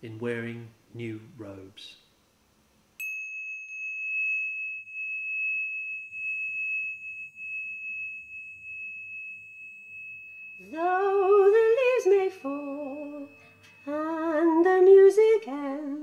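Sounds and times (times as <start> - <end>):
high pure ringing tone: 3.0 - 16.0.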